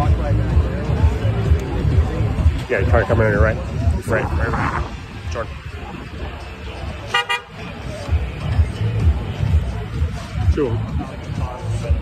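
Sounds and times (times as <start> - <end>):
music with bass beat: 0.0 - 12.0
vehicle horn double toot: 7.1 - 7.5.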